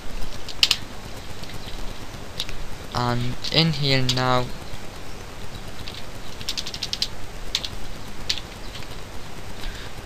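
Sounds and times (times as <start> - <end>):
computer keyboard keystrokes: 5.8 - 8.8.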